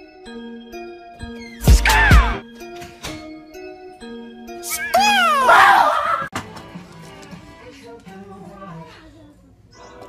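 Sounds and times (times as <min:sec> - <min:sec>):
background music of held notes: 0:00.0 - 0:08.1
shrill wailing scream: 0:05.0 - 0:06.3.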